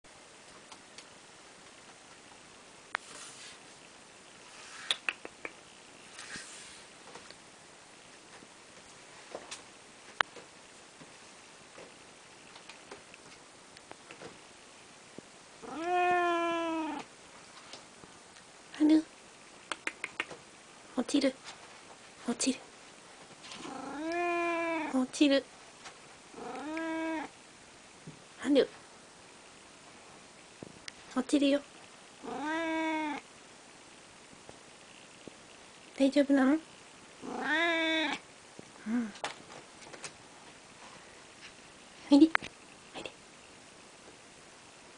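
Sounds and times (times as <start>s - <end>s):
cat meowing: 15.6s - 17.1s, 23.6s - 25.0s, 26.4s - 27.3s, 32.2s - 33.2s, 37.2s - 38.2s.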